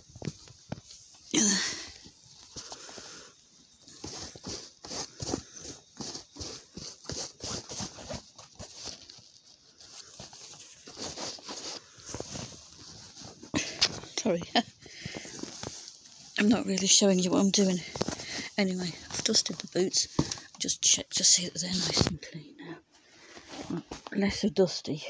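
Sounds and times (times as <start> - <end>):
cloth rubbing and brushing boots: 3.8 - 14.4.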